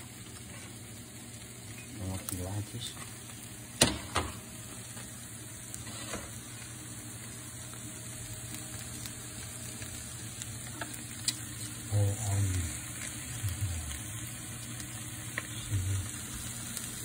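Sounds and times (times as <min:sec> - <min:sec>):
potatoes sizzling in a frying pan: 0:00.0 - 0:17.0.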